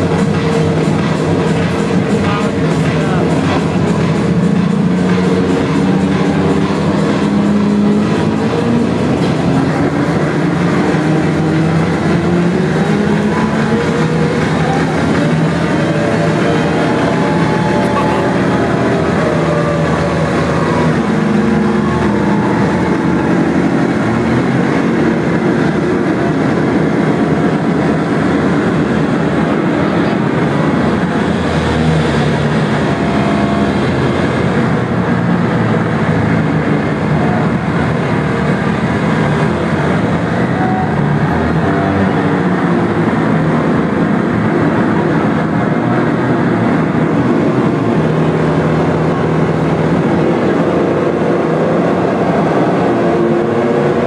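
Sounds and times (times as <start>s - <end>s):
loud distorted electronic music: 0.0s - 27.0s.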